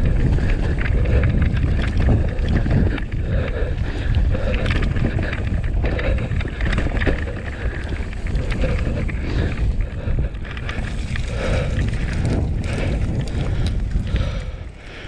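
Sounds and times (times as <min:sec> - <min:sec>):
bike clicks and rattles: 0:00.0 - 0:15.0
bike tyre rumble: 0:00.0 - 0:15.0
wind on microphone: 0:00.0 - 0:15.0.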